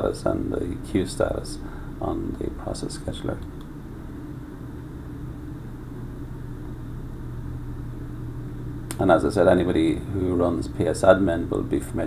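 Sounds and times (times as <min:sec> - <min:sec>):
low room hum and rumble: 0:00.0 - 0:12.0.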